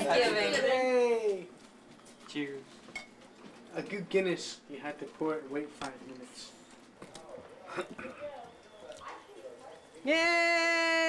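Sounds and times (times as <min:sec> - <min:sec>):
faint indistinct voices: 0:04.6 - 0:11.0.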